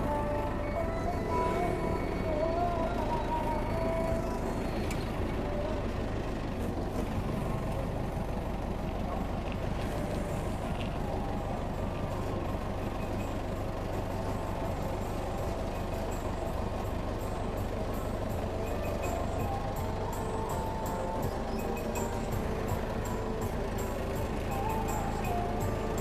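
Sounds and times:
forklift engine running: 0.0 - 26.0.

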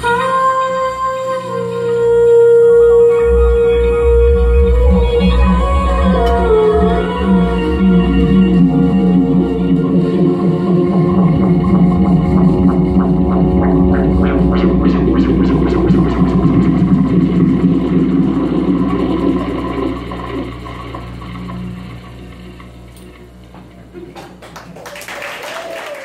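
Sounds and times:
low droning tone: 0.0 - 24.2
live band holding a chord: 1.1 - 21.9.

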